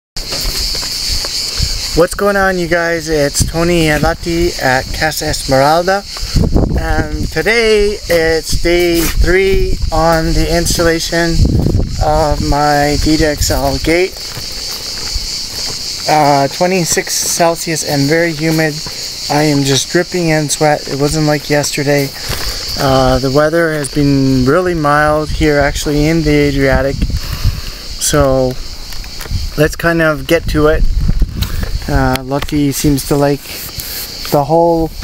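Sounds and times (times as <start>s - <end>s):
insects buzzing: 0.2s - 35.0s.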